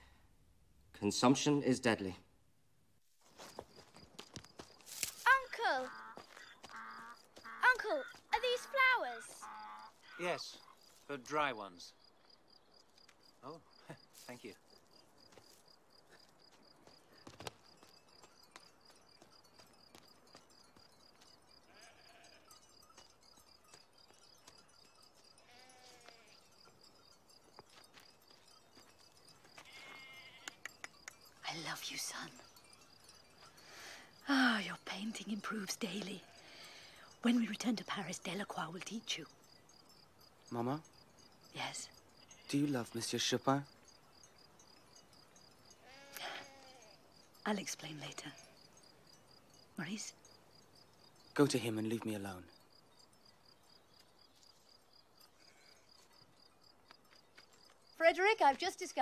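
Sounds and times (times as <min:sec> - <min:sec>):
cricket chirping: 0:03.2 - 0:59.0
distant animal bleat: 0:05.8 - 0:10.3, 0:21.7 - 0:22.6, 0:25.4 - 0:26.4, 0:29.6 - 0:30.7, 0:45.8 - 0:47.0.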